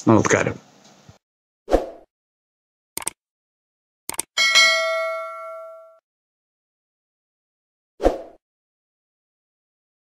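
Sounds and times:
notification bell ding: 4.4 - 6.0.

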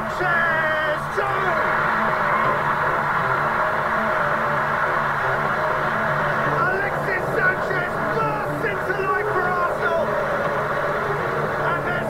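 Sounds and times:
stadium crowd cheering and shouting: 0.0 - 12.0.

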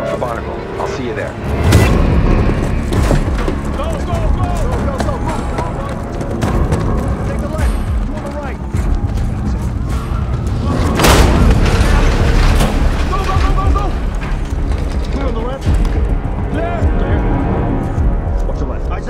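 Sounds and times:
tense orchestral score: 0.0 - 19.0
loud boom: 10.7 - 14.4.

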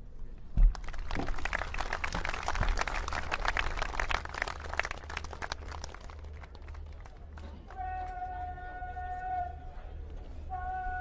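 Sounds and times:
audience applauding: 0.7 - 7.8.

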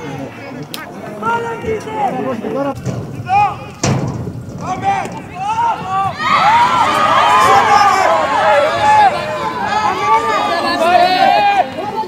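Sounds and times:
sharp thump: 2.8 - 5.4
players shouting: 4.6 - 12.0.

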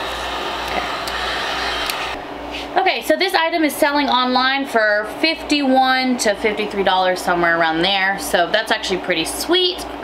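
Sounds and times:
heat gun fan blowing: 0.0 - 10.0.

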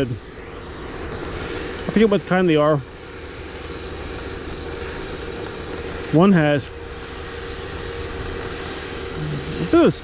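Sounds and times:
engine droning: 0.0 - 10.0
man speaking: 1.9 - 2.8, 9.2 - 10.0.

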